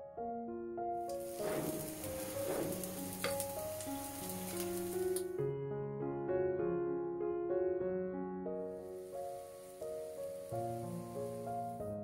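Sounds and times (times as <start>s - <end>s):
background music: 0.2s - 12.0s
water boiling and hissing: 1.1s - 5.3s, 8.8s - 12.0s
metal ladle clinking: 2.4s - 4.7s.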